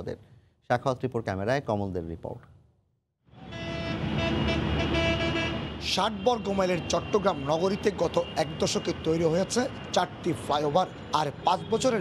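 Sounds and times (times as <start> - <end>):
road traffic noise: 3.2 - 12.0
vehicle horn sounding: 3.4 - 8.8.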